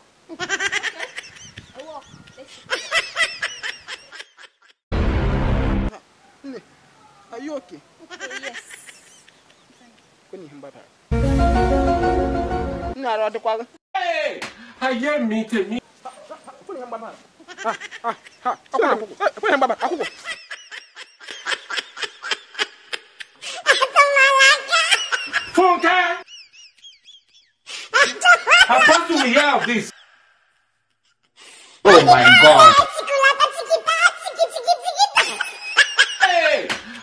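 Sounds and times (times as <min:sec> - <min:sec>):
person laughing hard: 0:00.3 - 0:04.8, 0:27.9 - 0:30.0, 0:31.9 - 0:37.0.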